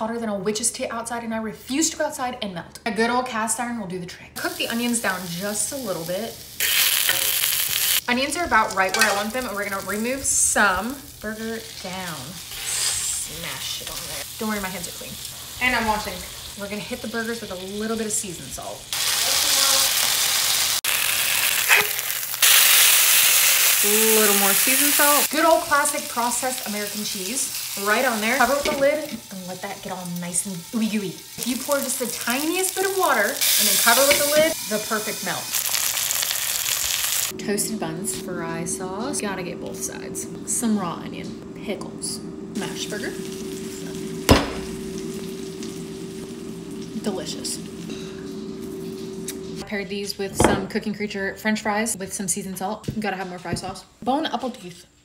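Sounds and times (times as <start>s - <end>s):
burger sizzling in a skillet: 4.4s - 8.1s, 8.7s - 37.4s, 42.6s - 49.6s
low hum: 23.8s - 51.4s.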